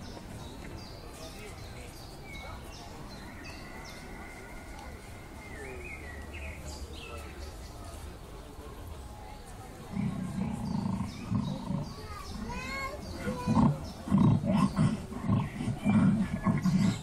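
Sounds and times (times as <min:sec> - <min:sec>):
loud snoring: 0:09.9 - 0:12.5, 0:13.2 - 0:17.0.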